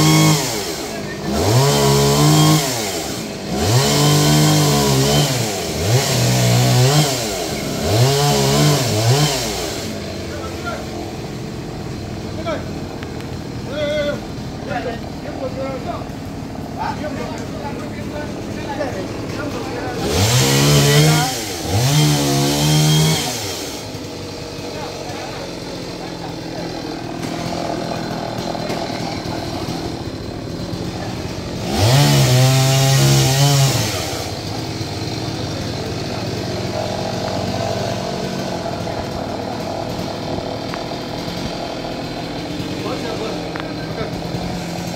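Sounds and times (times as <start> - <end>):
chainsaw revving: 0.0 - 44.9.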